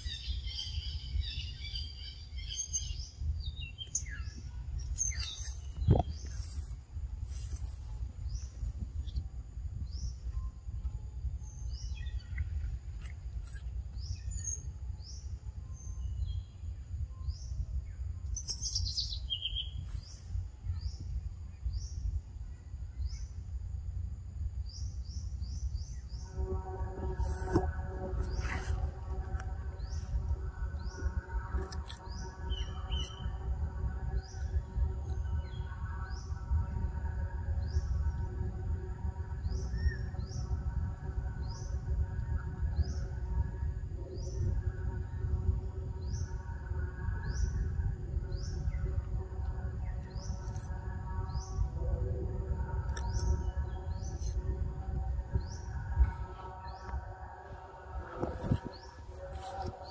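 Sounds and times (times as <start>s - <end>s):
bird chirping: 0.0s - 9.2s, 9.8s - 23.4s, 24.6s - 36.6s
low outdoor rumble: 0.0s - 59.9s.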